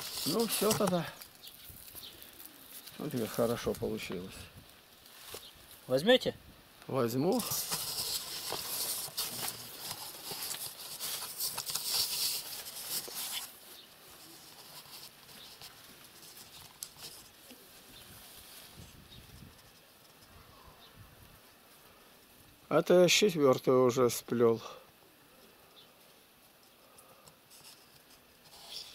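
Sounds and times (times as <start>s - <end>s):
dry rustling and crackling: 0.0s - 6.2s, 6.8s - 20.6s.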